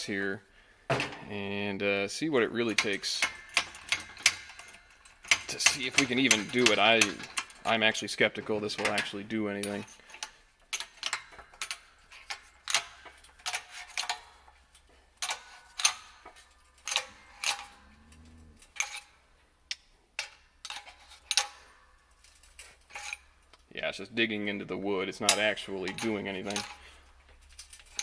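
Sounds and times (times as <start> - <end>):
hydraulic jack metallic clicks: 15.2 - 17.8.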